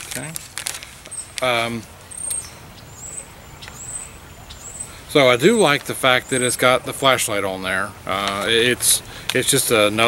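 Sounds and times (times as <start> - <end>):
paper crackling: 0.0 - 1.8
faint outdoor background: 0.0 - 10.0
high-pitched bird calls: 1.1 - 7.4.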